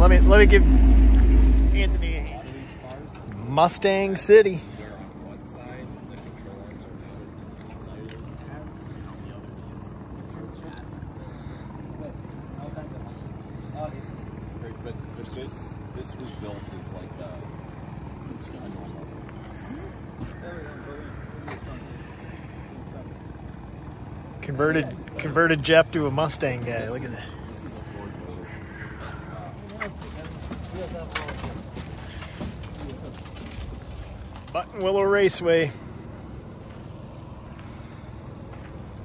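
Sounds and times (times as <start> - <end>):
low drone: 0.0 - 3.5
faint voices talking: 0.0 - 39.0.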